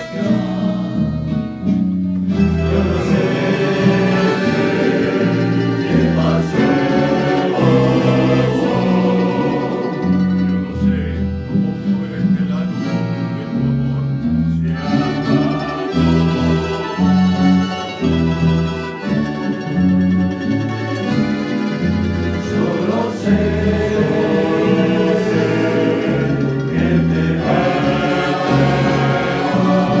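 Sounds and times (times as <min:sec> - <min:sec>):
men's choir singing: 0:00.0 - 0:01.7, 0:02.3 - 0:13.6, 0:14.6 - 0:18.9, 0:21.8 - 0:30.0
accordion: 0:00.0 - 0:30.0
bass line: 0:00.0 - 0:30.0
guitars and plucked strings: 0:00.0 - 0:30.0.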